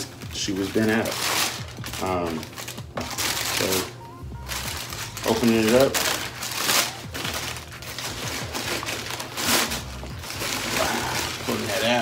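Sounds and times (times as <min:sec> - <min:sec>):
tissue paper rustling and crinkling: 0:00.0 - 0:12.0.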